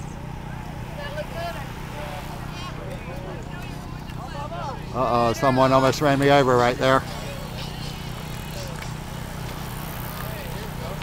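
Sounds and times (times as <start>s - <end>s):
distant people talking: 0.0s - 11.0s.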